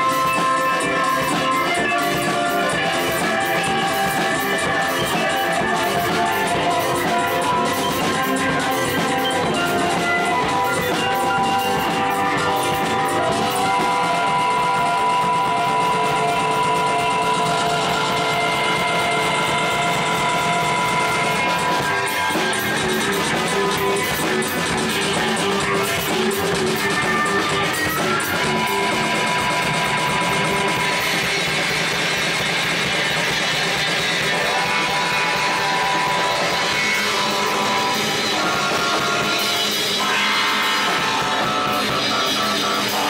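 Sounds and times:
drumming: 0.0 - 43.0
live band playing: 0.0 - 43.0.

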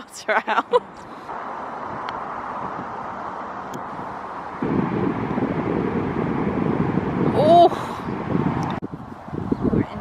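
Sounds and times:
wind buffeting microphone: 1.7 - 10.0.

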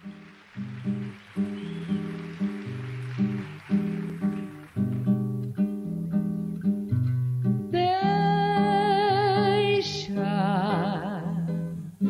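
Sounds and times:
acoustic guitar plucked chords: 0.0 - 12.0.

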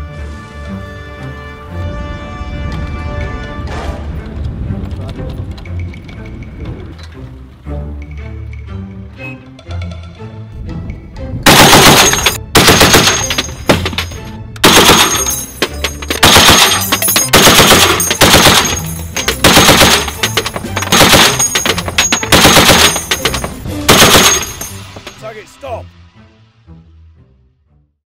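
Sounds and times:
machine gun bursts: 11.5 - 13.5, 14.6 - 24.7.

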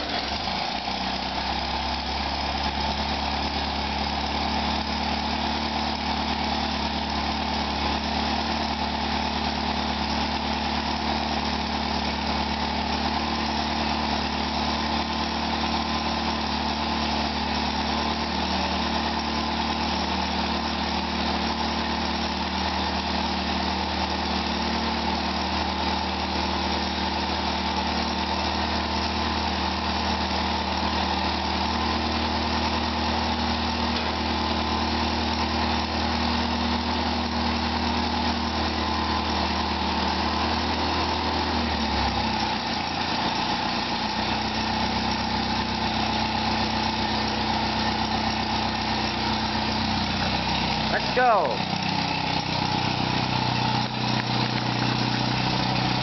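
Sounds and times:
tractor engine idling: 0.0 - 56.0.

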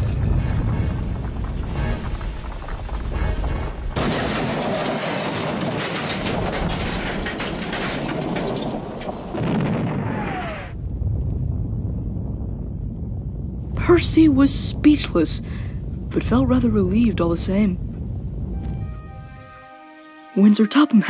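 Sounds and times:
boulder smashing into building: 0.0 - 10.7
explosion and debris rumble: 0.0 - 19.0
music: 18.5 - 21.0.

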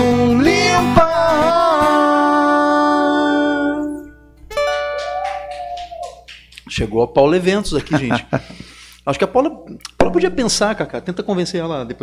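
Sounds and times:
acoustic guitar strumming: 0.0 - 6.5, 10.0 - 10.8.

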